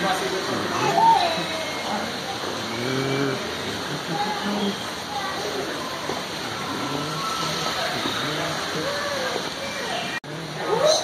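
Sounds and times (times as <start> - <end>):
low drawn-out voice-like call: 0.8 - 4.8.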